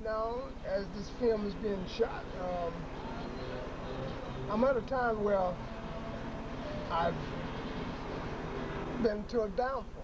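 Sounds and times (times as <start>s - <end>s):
man speaking: 0.0s - 5.6s, 6.8s - 7.6s, 9.0s - 10.0s
vehicle rumble with low pulse: 0.0s - 10.0s.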